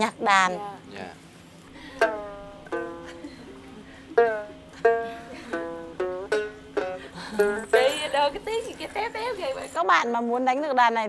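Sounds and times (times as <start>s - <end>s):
plucked lute notes: 1.7s - 9.7s.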